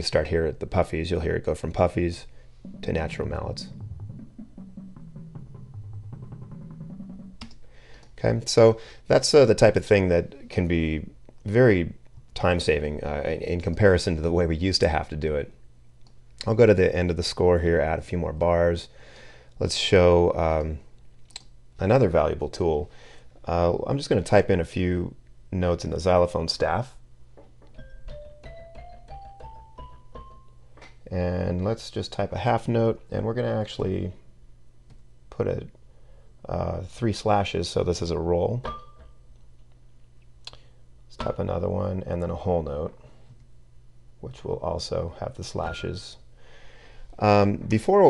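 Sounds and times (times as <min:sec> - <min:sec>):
marching bass drums: 0:02.6 - 0:07.4
sampled xylophone notes climbing: 0:02.6 - 0:07.4, 0:27.7 - 0:30.6.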